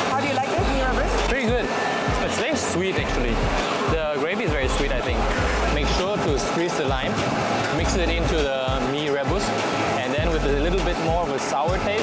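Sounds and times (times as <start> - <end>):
background music: 0.0 - 12.0
man speaking: 1.2 - 12.0.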